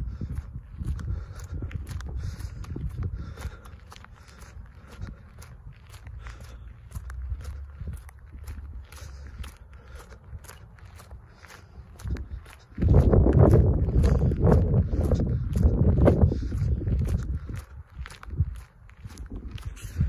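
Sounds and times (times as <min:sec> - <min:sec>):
footsteps on concrete: 0:00.0 - 0:20.0.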